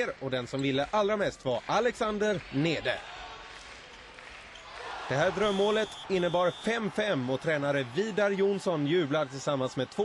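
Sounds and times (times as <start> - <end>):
crowd hubbub in arena: 0.0 - 10.0.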